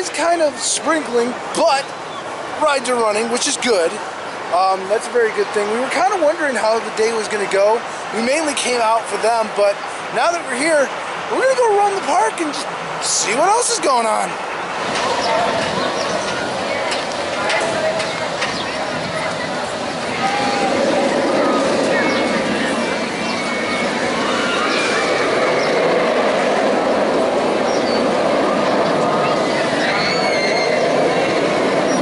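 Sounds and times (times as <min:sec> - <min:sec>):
people's voices: 0:00.0 - 0:32.0
roller coaster rumbling on track: 0:00.0 - 0:32.0.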